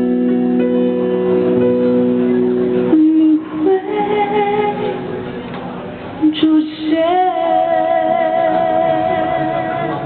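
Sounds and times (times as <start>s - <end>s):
digital piano: 0.0s - 6.3s
woman singing: 2.9s - 5.1s, 6.2s - 10.0s.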